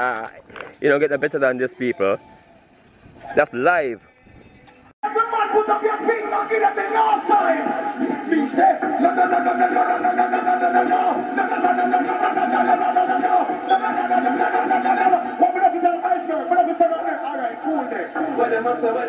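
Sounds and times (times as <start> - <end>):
din of overlapping voices: 0.0 - 19.0.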